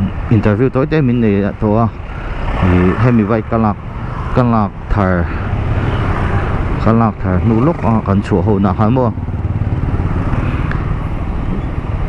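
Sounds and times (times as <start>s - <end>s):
man talking: 0.0s - 5.4s, 6.8s - 9.2s
motorcycle engine running: 7.5s - 10.4s.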